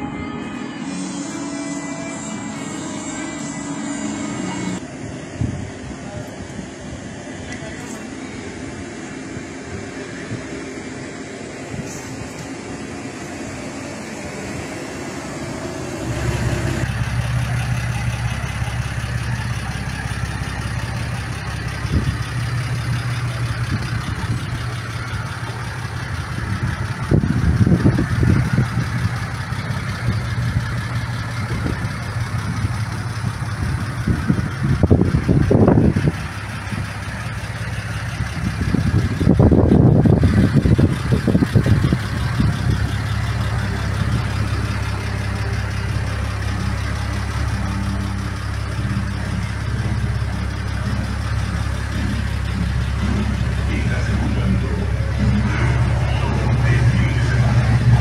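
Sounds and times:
car engine idling: 0:00.8 - 0:58.0.

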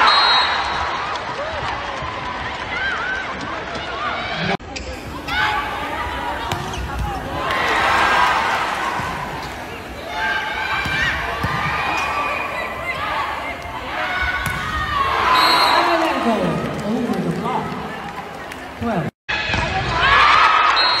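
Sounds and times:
crowd cheering and shouting: 0:00.0 - 0:21.0
players calling: 0:04.8 - 0:19.0.

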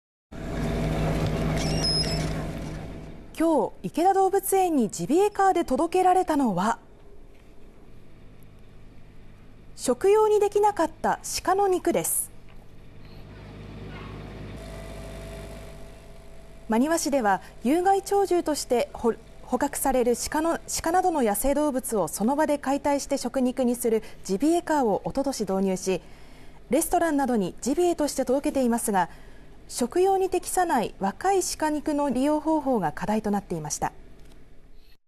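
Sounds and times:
metal door latch squeaking: 0:01.6 - 0:02.4.

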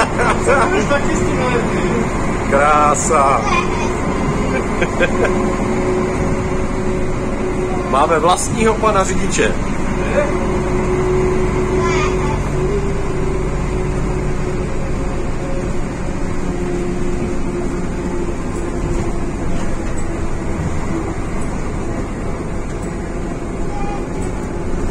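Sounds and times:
bus diesel engine drone: 0:00.0 - 0:24.9.

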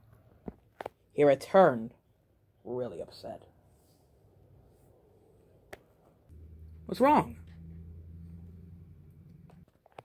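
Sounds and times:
steady low hum: 0:06.3 - 0:09.6.

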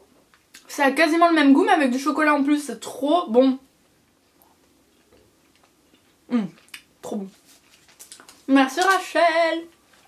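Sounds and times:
woman humming mmh: 0:06.3 - 0:06.6.

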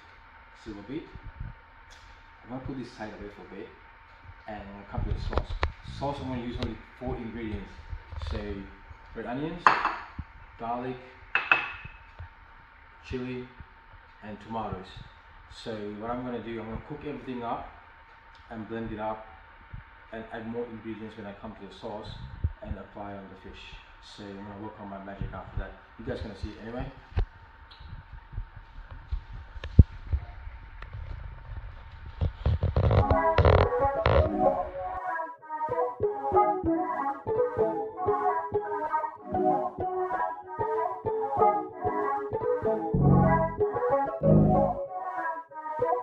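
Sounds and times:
ceramic bowl clinking on counter: 0:09.6 - 0:10.1, 0:11.4 - 0:11.9.

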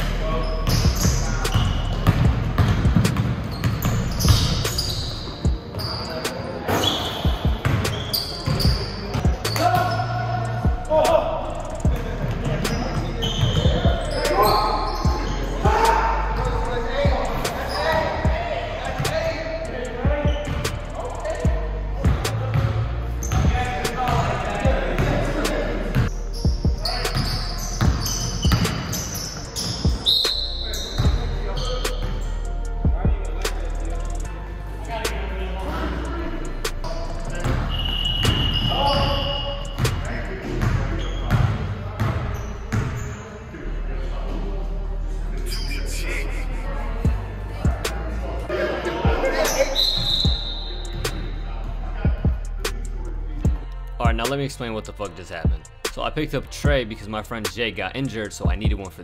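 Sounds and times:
shoe squeaks: 0:00.3 - 0:10.4, 0:12.4 - 0:18.2, 0:19.2 - 0:21.3, 0:23.2 - 0:24.2, 0:25.9 - 0:32.4, 0:36.8 - 0:43.5, 0:45.4 - 0:46.2, 0:49.3 - 0:51.4
players shouting: 0:05.9 - 0:11.8, 0:12.6 - 0:21.2.

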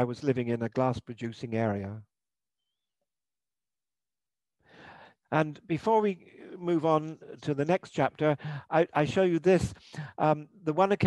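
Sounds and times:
man's short intake of breath: 0:04.6 - 0:05.2.

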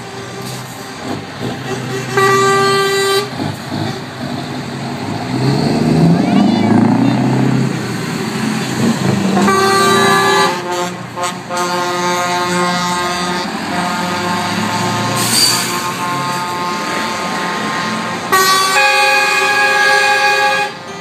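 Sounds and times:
truck horn: 0:00.0 - 0:07.4, 0:08.8 - 0:21.0
diesel truck driving past: 0:00.0 - 0:21.0.

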